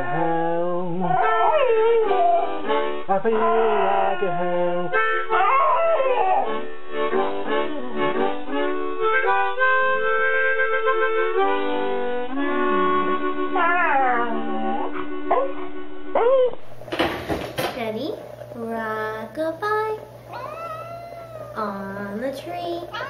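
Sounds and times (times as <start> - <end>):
dog howling: 0.0 - 6.7, 13.5 - 16.6, 20.3 - 21.7
music with held chords: 0.0 - 16.6.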